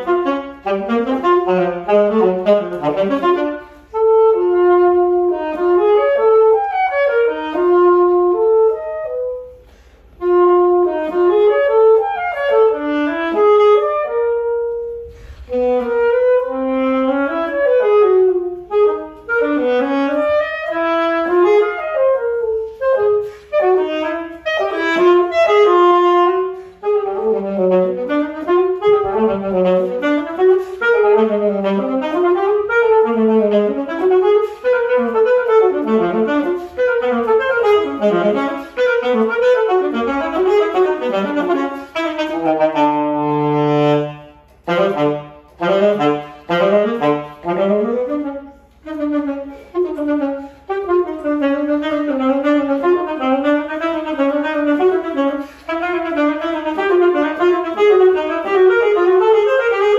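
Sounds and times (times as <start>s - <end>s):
solo saxophone melody: 0.0s - 59.9s.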